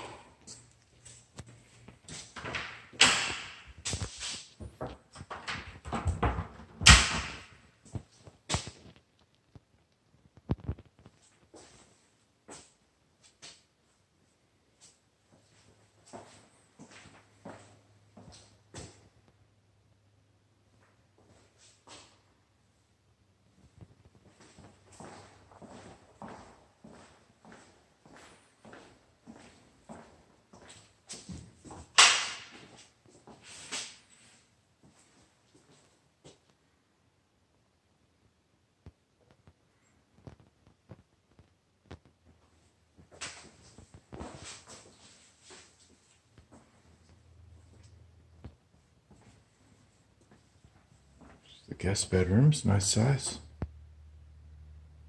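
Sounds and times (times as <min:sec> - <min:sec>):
footsteps on tiled floor: 0:23.6 - 0:31.9, 0:40.2 - 0:51.5.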